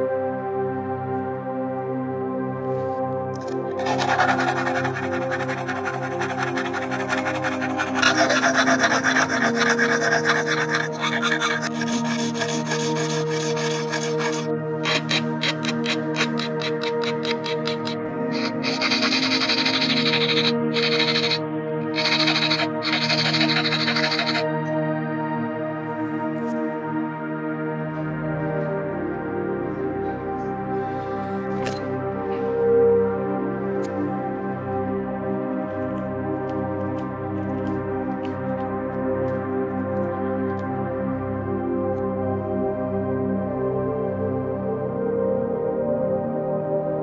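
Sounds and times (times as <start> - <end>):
hand file scraping metal: 3.8 - 24.4.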